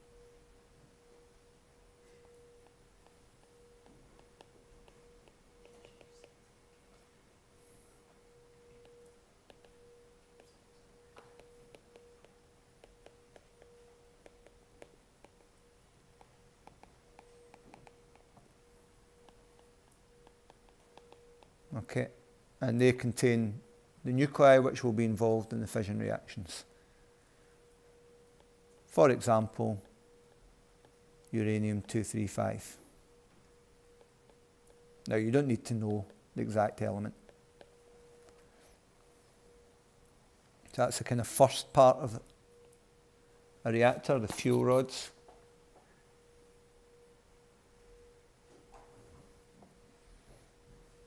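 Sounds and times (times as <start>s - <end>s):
faint steady hum: 0.0s - 51.0s
faint steady tone: 0.0s - 51.0s
stylus tapping on tablet screen: 2.6s - 6.4s, 8.8s - 9.8s, 10.4s - 15.6s, 16.2s - 18.5s, 19.2s - 21.6s.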